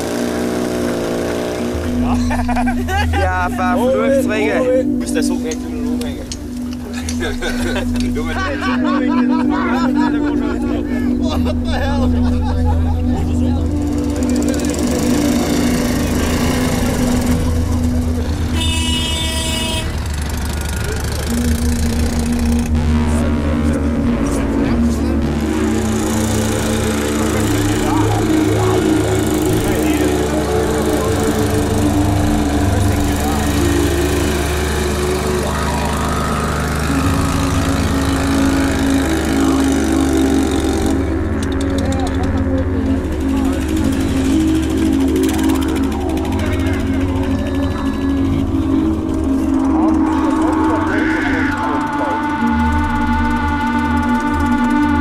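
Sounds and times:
crowd voices: 0:00.0 - 0:55.0
motorcycle engines running: 0:00.0 - 0:55.0
music of long held notes: 0:00.0 - 0:55.0.

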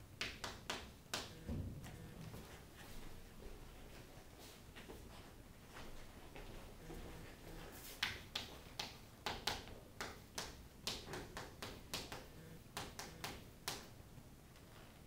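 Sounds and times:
chalk tapping on chalkboard: 0:07.8 - 0:13.9.

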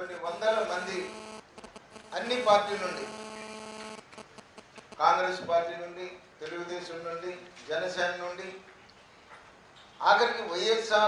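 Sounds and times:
electrical mains hum: 0:00.0 - 0:05.5
small ticks: 0:00.4 - 0:05.0.

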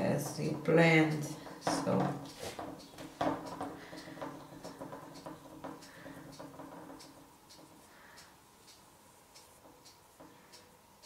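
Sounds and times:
fingers tapping wet paint: 0:00.0 - 0:08.8
low steady hum: 0:00.0 - 0:11.0.

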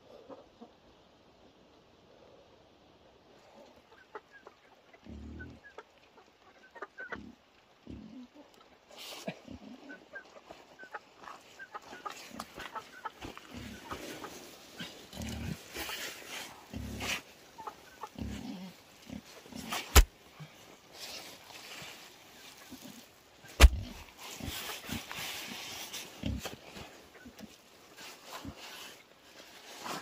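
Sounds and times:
chickens peeping and clucking: 0:00.0 - 0:30.0.

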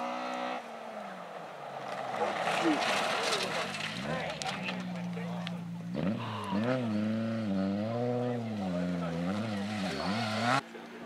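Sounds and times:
rally car engine: 0:00.0 - 0:11.0.

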